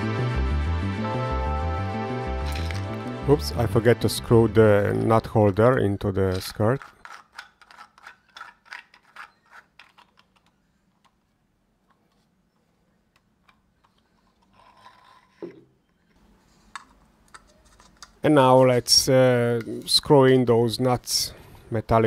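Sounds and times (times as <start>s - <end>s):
plastic handling sounds: 2.4s - 3.0s, 4.8s - 18.5s
plastic parts clicking: 4.9s - 15.6s, 16.7s - 18.2s.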